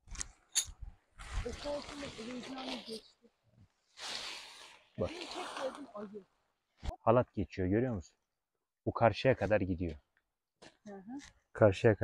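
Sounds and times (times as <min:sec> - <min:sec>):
canvas fabric rustling: 0:01.2 - 0:03.1, 0:03.9 - 0:06.1.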